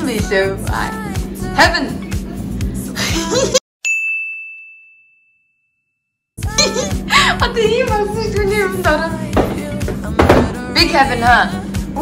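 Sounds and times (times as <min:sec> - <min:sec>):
music: 0:00.0 - 0:03.6, 0:06.4 - 0:12.0
high bell-like ding: 0:03.8 - 0:06.8.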